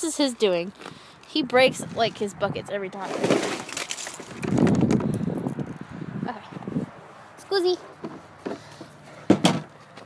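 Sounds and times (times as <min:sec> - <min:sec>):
wind gusting on microphone: 0:01.4 - 0:03.2, 0:04.2 - 0:07.4.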